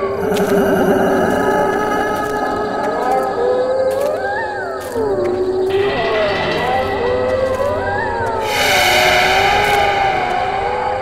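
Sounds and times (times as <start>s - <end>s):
eerie wavering tones: 0.0s - 11.0s
loud rushing whoosh: 8.4s - 11.0s.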